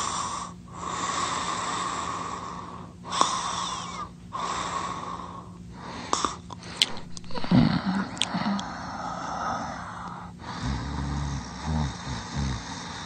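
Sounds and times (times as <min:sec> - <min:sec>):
wheezing snoring: 0:00.0 - 0:13.0.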